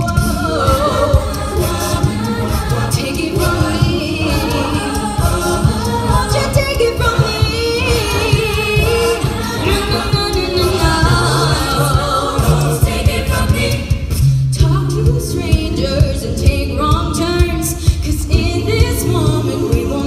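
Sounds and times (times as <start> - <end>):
steady beat: 0.0 - 17.7
a cappella group singing: 0.0 - 20.0
low vocal bass line: 1.9 - 13.8.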